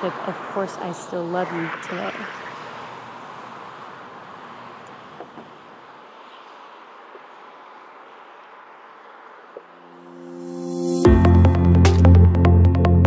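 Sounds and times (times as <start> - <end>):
faint outdoor background noise: 0.0 - 11.0
steady music tones: 9.8 - 13.0.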